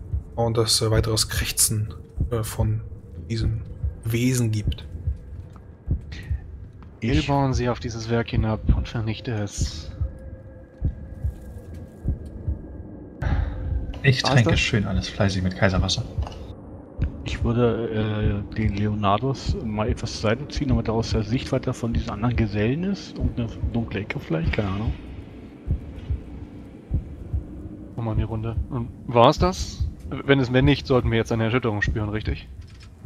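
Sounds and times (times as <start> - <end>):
soft low thumps: 0.0 - 33.0.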